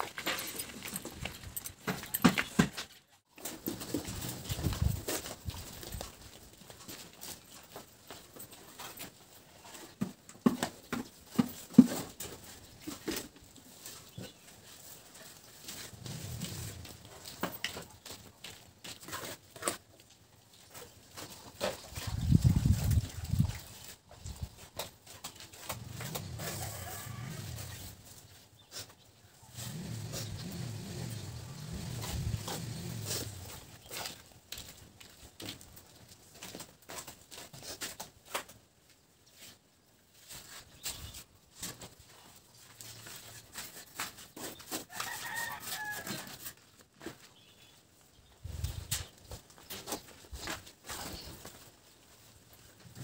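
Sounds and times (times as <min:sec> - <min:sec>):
rooster crowing: 0:26.4 - 0:27.8, 0:44.9 - 0:46.3
animal grunting: 0:29.5 - 0:33.6.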